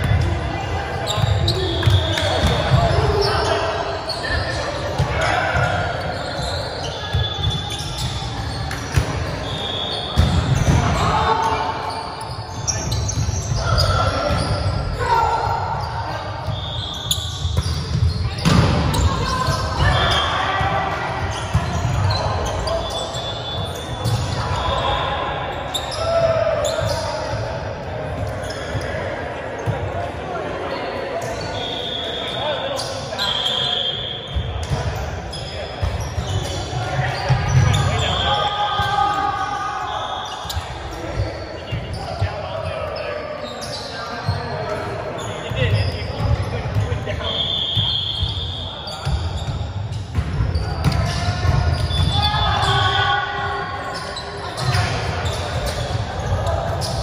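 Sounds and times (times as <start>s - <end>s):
volleyballs hit and bouncing: 0.0s - 3.3s, 6.7s - 11.9s, 17.2s - 23.2s, 34.4s - 39.3s, 49.0s - 52.9s
players' voices: 0.0s - 57.0s.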